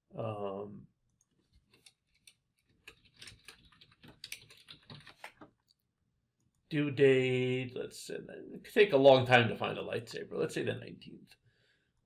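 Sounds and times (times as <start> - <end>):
keyboard typing: 1.7 - 5.4.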